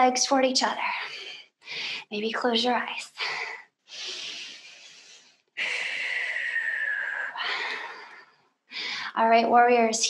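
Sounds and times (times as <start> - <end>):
woman breathing deeply: 3.2 - 9.2.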